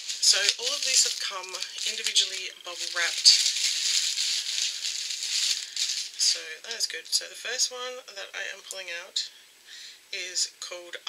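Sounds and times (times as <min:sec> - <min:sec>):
bubble wrap crinkling: 0:00.0 - 0:07.3.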